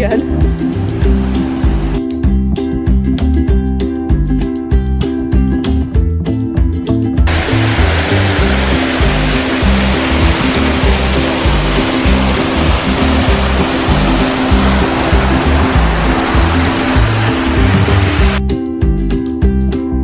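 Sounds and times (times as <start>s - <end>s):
background music: 0.0s - 20.0s
waterfall rushing: 0.7s - 2.0s, 7.3s - 18.4s.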